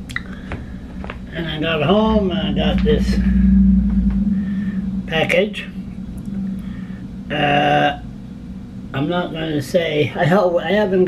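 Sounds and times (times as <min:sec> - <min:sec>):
steady low hum: 0:00.0 - 0:11.0
deep rumble: 0:00.6 - 0:10.2.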